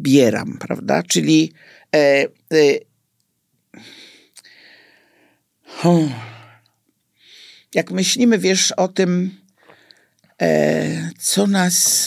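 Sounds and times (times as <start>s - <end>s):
faint breath: 3.7s - 5.4s, 9.6s - 10.2s.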